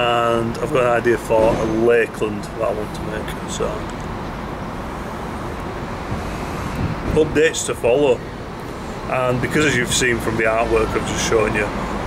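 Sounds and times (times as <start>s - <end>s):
distant road traffic: 0.0s - 12.0s
wind on microphone: 6.0s - 7.5s.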